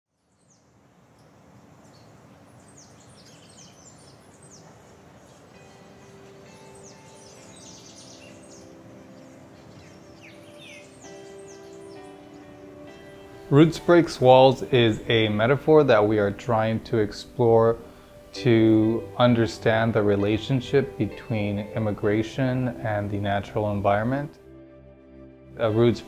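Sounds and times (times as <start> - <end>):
birds chirping: 0.1 - 26.0
soft music of held notes: 1.9 - 26.0.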